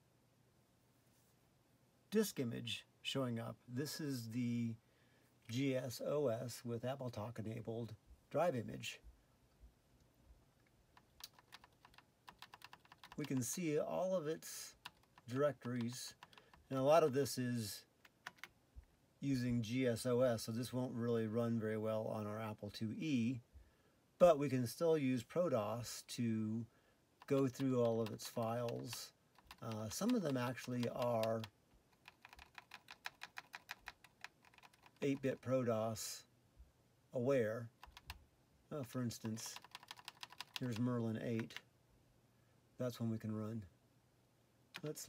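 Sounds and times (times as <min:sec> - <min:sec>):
keyboard keypresses clicking: 0:11.0 - 0:13.5, 0:14.8 - 0:16.6, 0:18.0 - 0:18.5, 0:27.2 - 0:35.2, 0:37.8 - 0:38.2, 0:39.3 - 0:40.8, 0:44.8 - 0:45.0.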